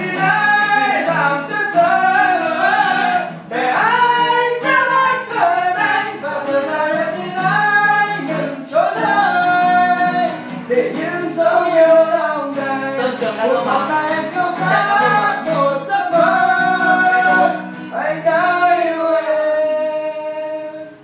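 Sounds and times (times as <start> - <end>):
person singing slow song: 0.0 - 21.0
strummed acoustic guitar: 0.0 - 21.0.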